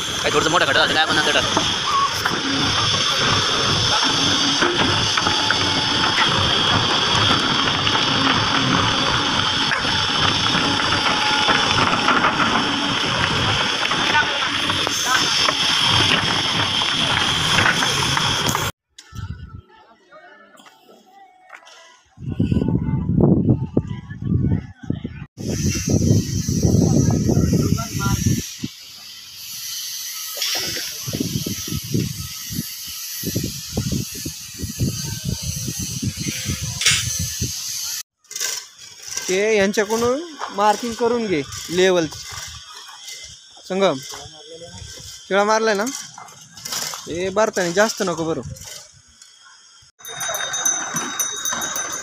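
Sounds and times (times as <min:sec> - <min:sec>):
gravel rattling: 0:00.0 - 0:19.3
wind buffeting microphone: 0:00.0 - 0:19.7, 0:22.1 - 0:28.9, 0:30.8 - 0:38.0
steel bucket scraping soil: 0:00.1 - 0:18.7, 0:38.2 - 0:49.0, 0:50.0 - 0:52.0.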